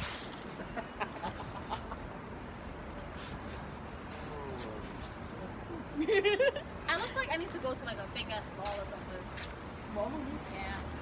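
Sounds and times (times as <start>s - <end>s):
street background noise: 0.0s - 11.0s.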